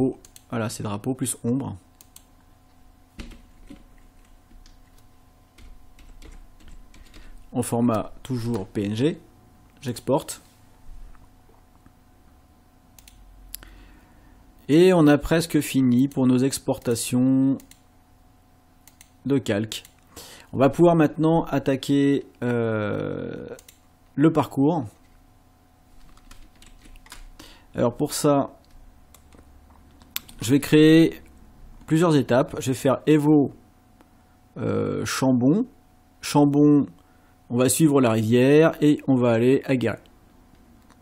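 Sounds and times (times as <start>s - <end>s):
computer keyboard keystrokes: 0.2s - 0.5s, 3.2s - 7.3s, 13.0s - 13.2s, 17.6s - 17.8s, 18.8s - 19.1s, 26.0s - 27.3s, 28.6s - 30.4s.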